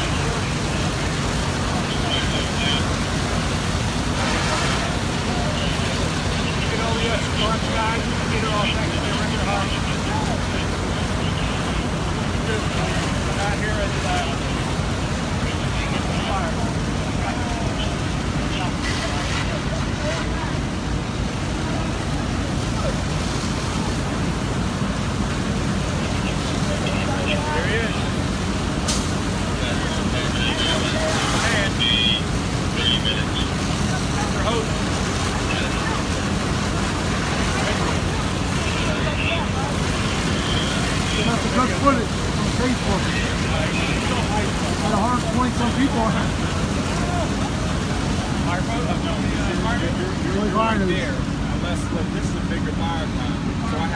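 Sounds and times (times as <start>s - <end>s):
faint voices: 0.0s - 53.9s
fire engines rumbling: 0.0s - 53.9s.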